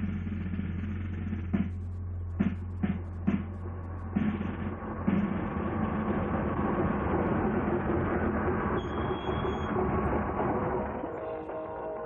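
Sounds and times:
drum hit: 0.0s - 7.0s
snare drum roll: 0.0s - 8.8s
low hum: 0.0s - 12.0s.

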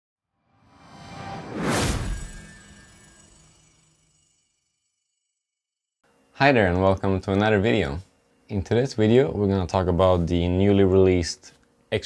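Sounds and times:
whoosh sound effect: 0.7s - 4.1s
low hit: 0.8s - 3.9s.

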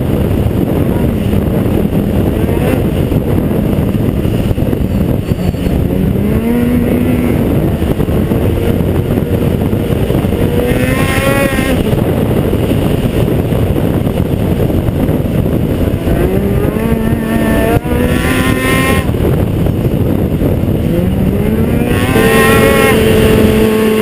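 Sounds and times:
snowmobile engine running hard: 0.0s - 24.0s.

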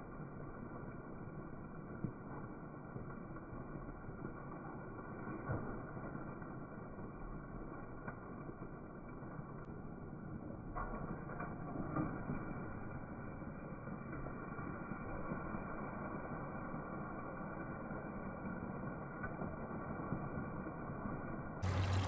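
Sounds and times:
steady low noise: 0.0s - 22.0s.

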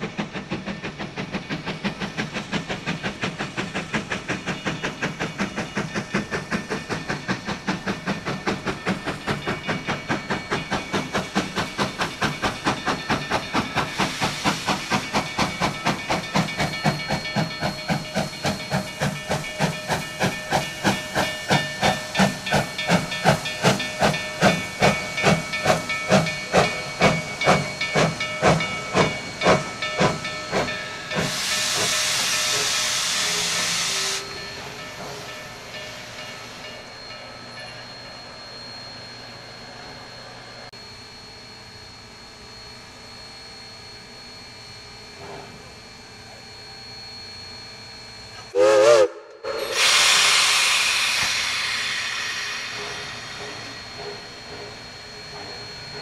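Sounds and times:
steam hissing: 0.0s - 40.7s, 42.2s - 56.0s
steam locomotive chuffing: 0.0s - 56.0s.

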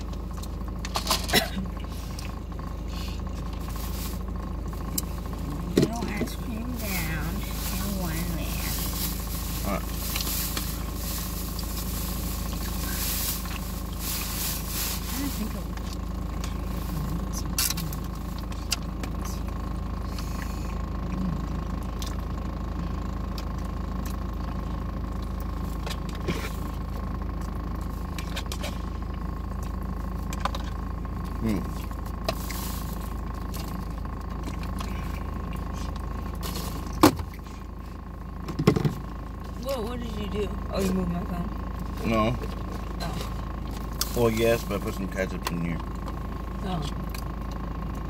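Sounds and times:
car hum inside cabin: 0.0s - 48.0s.

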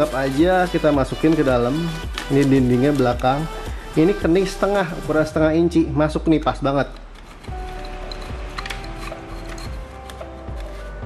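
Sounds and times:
background music of held notes: 0.0s - 11.0s.

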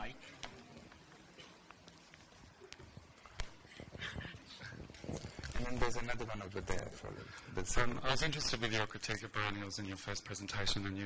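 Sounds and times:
faint voices murmuring: 0.0s - 7.9s.

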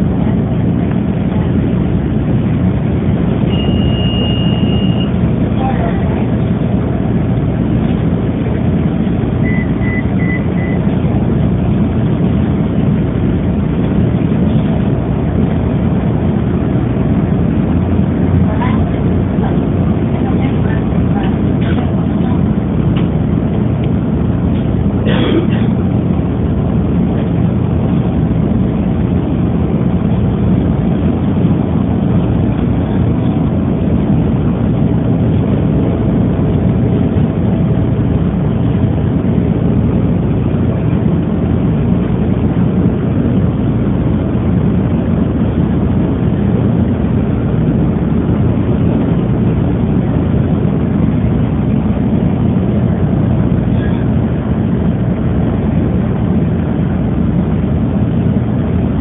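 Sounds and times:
faint whine: 0.0s - 59.0s
train car rumble: 0.0s - 59.0s.

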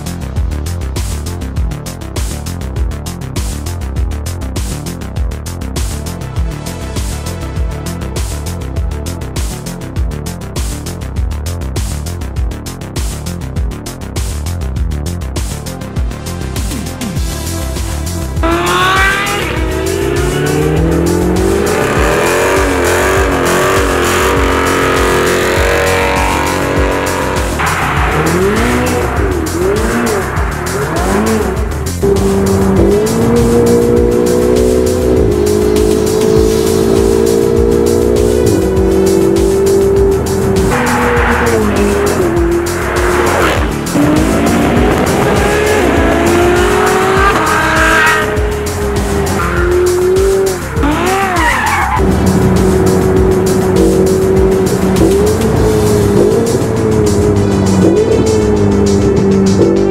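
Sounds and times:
music with steady beat: 0.0s - 59.9s
sports car engines revving: 17.5s - 59.9s
tyres squealing: 49.1s - 52.1s.

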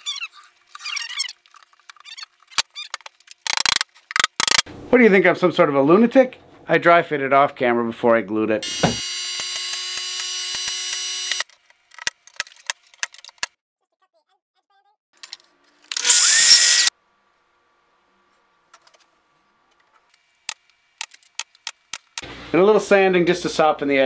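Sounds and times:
power tool with rising whine: 8.6s - 11.5s, 15.9s - 16.9s.

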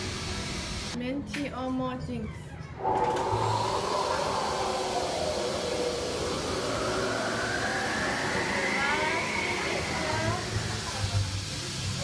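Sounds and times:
faint whistling tones rising: 2.8s - 11.5s
steady rushing hiss: 2.8s - 12.0s.

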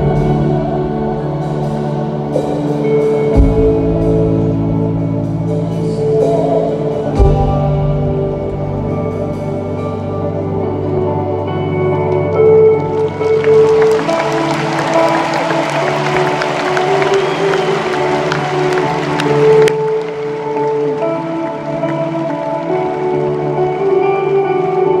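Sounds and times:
ambient keyboard chords: 0.0s - 25.0s
crowd cheering and applause: 12.1s - 25.0s.

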